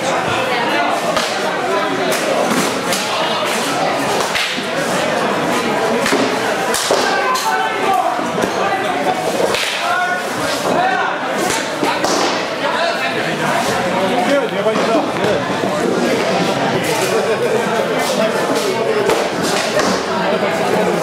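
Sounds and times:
crowd chatter in large hall: 0:00.0 - 0:21.0.

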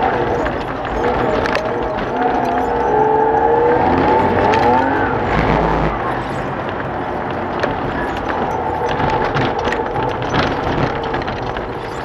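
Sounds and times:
race car engine under load: 0:00.0 - 0:12.0.

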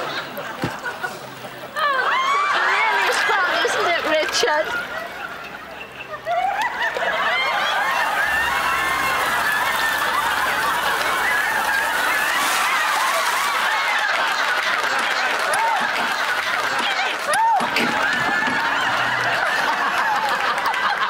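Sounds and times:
audience laughing: 0:00.0 - 0:21.0.

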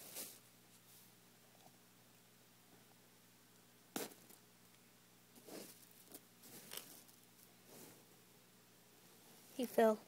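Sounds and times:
fingers crackling in dry oats: 0:05.4 - 0:07.5.

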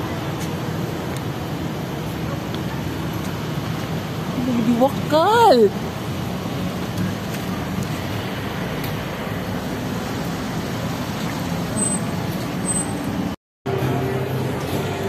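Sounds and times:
cars passing on road: 0:00.0 - 0:15.0.

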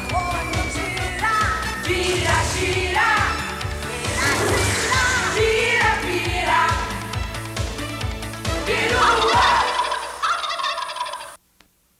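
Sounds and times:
theme music: 0:00.0 - 0:10.2
turkey gobbling: 0:08.9 - 0:11.4.

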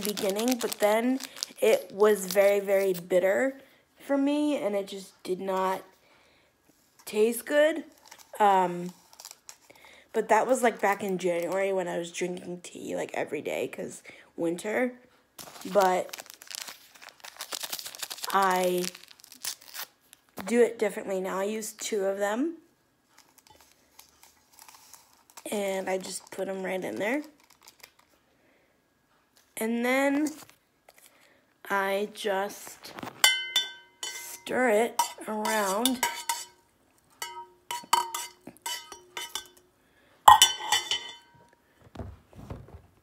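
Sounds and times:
paper packets crinkling: 0:00.0 - 0:03.0, 0:15.4 - 0:20.2, 0:27.2 - 0:28.2
spoon clinking in a tumbler: 0:33.2 - 0:34.4, 0:35.0 - 0:36.6, 0:37.2 - 0:39.6, 0:40.3 - 0:41.4.

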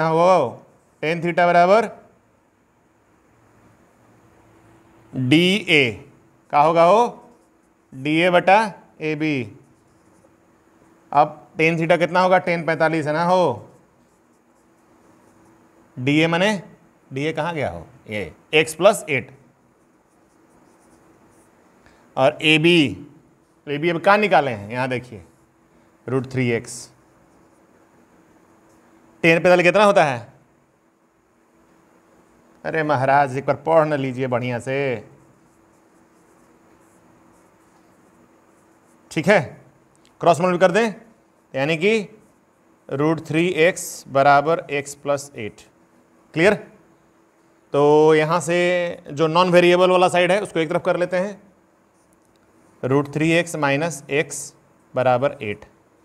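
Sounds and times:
man speaking: 0:00.0 - 0:02.1, 0:05.1 - 0:07.3, 0:07.9 - 0:09.6, 0:11.1 - 0:13.8, 0:16.0 - 0:19.4, 0:22.2 - 0:25.3, 0:26.0 - 0:27.0, 0:29.2 - 0:30.4, 0:32.6 - 0:35.2, 0:39.1 - 0:42.2, 0:42.9 - 0:45.7, 0:46.3 - 0:46.8, 0:47.7 - 0:51.5, 0:52.8 - 0:55.7
marker writing on whiteboard: 0:06.4 - 0:08.4, 0:09.4 - 0:11.0, 0:12.7 - 0:15.7, 0:19.7 - 0:22.0, 0:26.2 - 0:27.9, 0:34.9 - 0:39.2.

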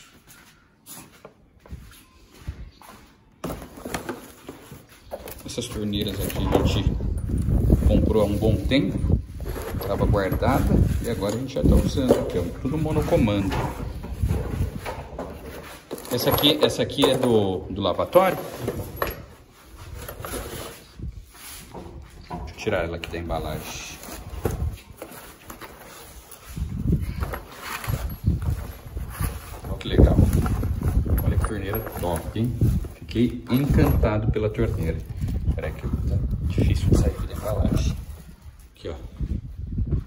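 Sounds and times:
cardboard packaging rustling: 0:23.2 - 0:34.0.

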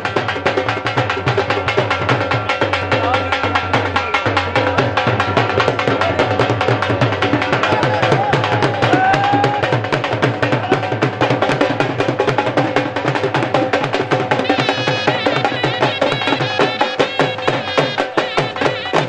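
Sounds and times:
barrel drums rapid beat: 0:00.0 - 0:19.0
pitched melody line: 0:13.9 - 0:19.0.

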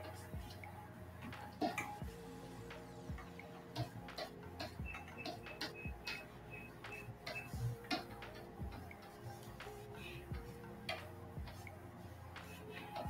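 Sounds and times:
quiet background music: 0:00.0 - 0:13.0
clicks and taps at computer: 0:03.8 - 0:09.9.

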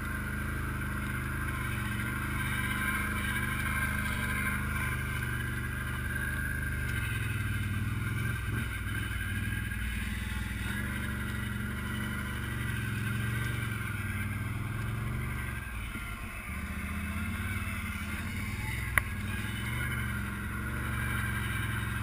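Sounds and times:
quad engine running: 0:00.0 - 0:22.0.

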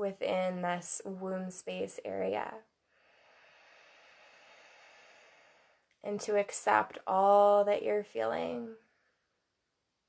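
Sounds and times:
slow breath out: 0:02.9 - 0:05.9.

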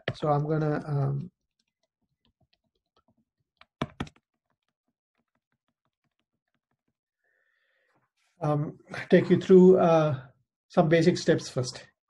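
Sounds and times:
stylus tapping on tablet screen: 0:01.6 - 0:07.1.

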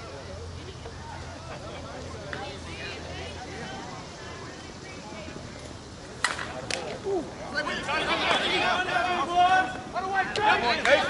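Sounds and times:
faint voices: 0:00.0 - 0:11.0
bat cracking ball: 0:06.2 - 0:07.0.

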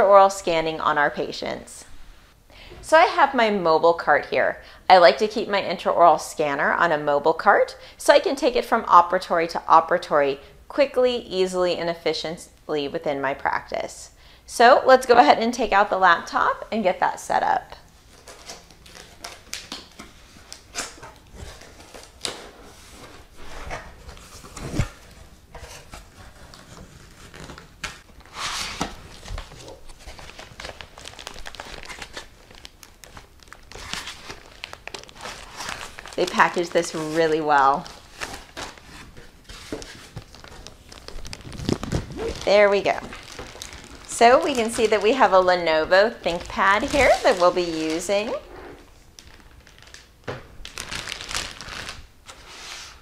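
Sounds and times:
packaging rustling and crinkling: 0:17.9 - 0:53.0.

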